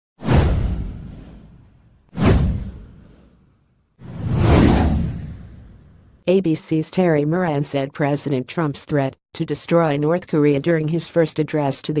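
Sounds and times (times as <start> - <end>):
whoosh sound effects: 2.2 - 6.0.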